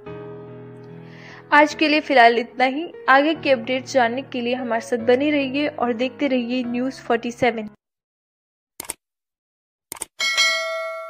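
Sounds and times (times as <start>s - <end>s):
bright bell chime: 10.2s - 11.0s.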